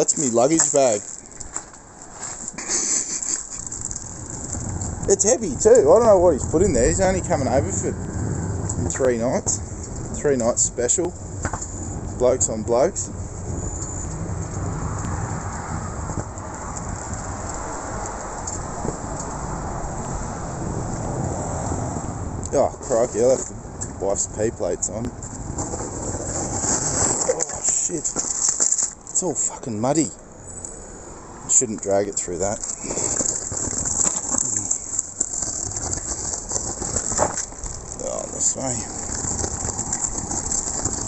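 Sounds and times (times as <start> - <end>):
luggage rolling over concrete: 0.0 - 30.0, 31.5 - 41.0
suitcase wheels on brick paving: 0.0 - 30.6, 31.5 - 41.0.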